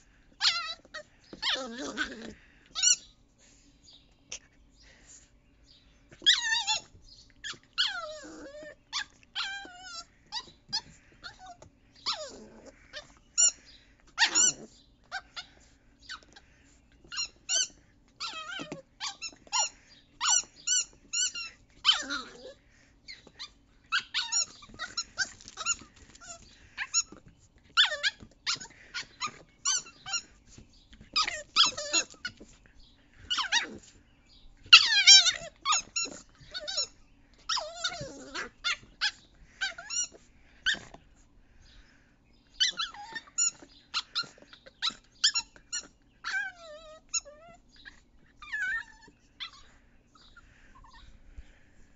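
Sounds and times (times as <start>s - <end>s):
squeaky toy squeaking: 14.2s - 14.6s, 17.1s - 22.4s, 23.9s - 27.2s, 27.8s - 30.3s, 31.1s - 32.4s, 34.7s - 40.8s, 42.6s - 49.6s
puppy chewing rubber toy: 17.0s - 22.5s, 24.1s - 32.5s, 34.7s - 36.8s.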